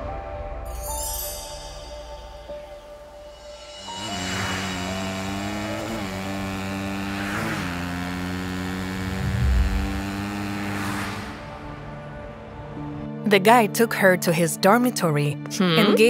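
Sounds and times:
electric scooter motor hum: 0:04.0 - 0:11.8
passing traffic whooshes: 0:08.9 - 0:13.1
low thump: 0:09.1 - 0:10.2.

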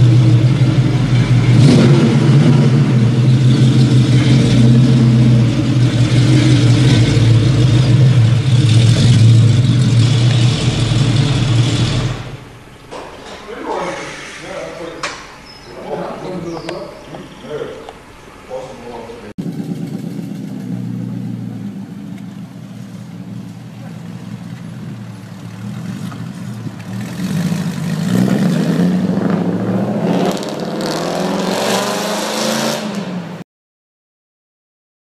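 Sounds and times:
car engine revving: 0:00.0 - 0:12.8, 0:19.1 - 0:33.4.

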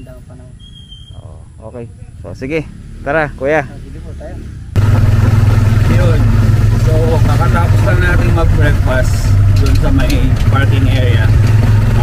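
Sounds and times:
motorcycle engine droning: 0:00.0 - 0:12.0.

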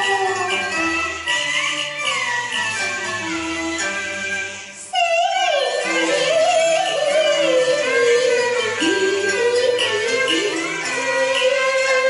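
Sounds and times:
woman singing opera into microphone: 0:00.0 - 0:00.9, 0:04.9 - 0:12.0
instrumental accompaniment: 0:00.0 - 0:12.0.

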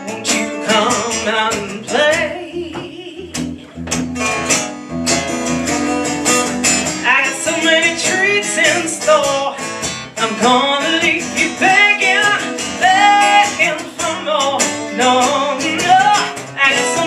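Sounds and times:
woman singing: 0:00.0 - 0:03.8, 0:07.0 - 0:17.0
acoustic guitar strumming: 0:00.0 - 0:17.0.

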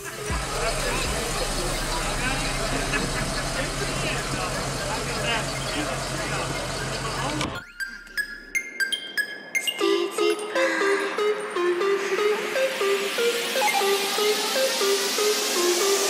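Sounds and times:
car engine idling: 0:00.0 - 0:07.6
people talking: 0:00.0 - 0:07.6.

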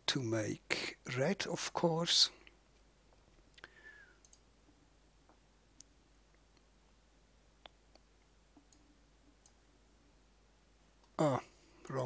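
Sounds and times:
faint computer mouse clicks: 0:03.6 - 0:04.5.

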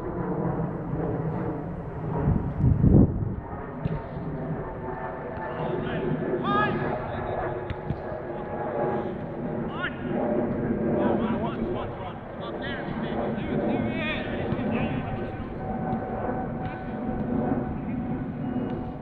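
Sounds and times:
loud deep rumble: 0:00.7 - 0:03.5
distant shouts of footballers: 0:05.5 - 0:07.4, 0:09.7 - 0:10.1.

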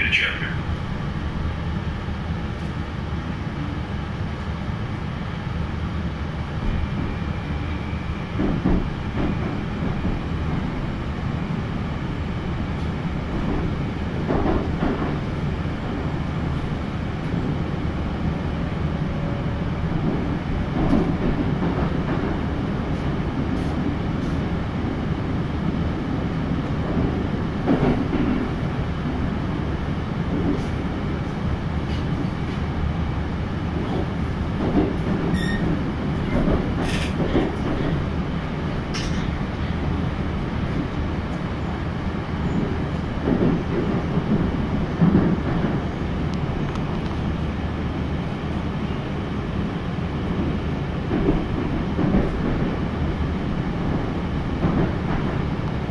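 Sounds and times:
train rumbling: 0:00.0 - 0:55.9.

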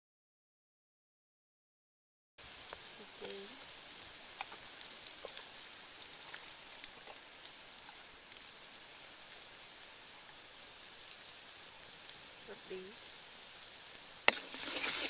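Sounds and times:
chilies sizzling in hot oil: 0:02.4 - 0:15.0
sharp crackles of frying: 0:02.4 - 0:15.0.

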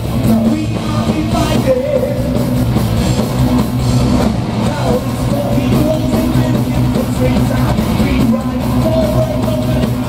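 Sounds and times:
heavy metal band playing live: 0:00.0 - 0:10.0.

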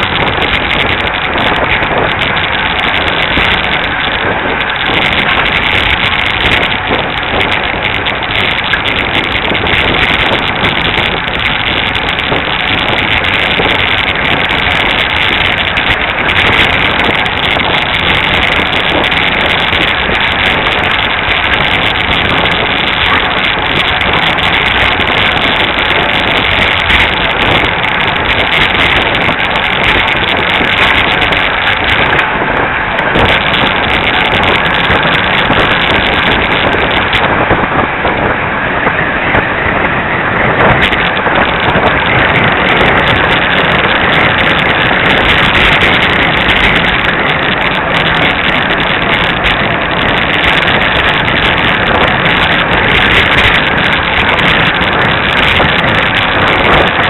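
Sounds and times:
bicycle tyre noise on road: 0:00.0 - 0:57.0
wind rush on microphone: 0:00.0 - 0:57.0.

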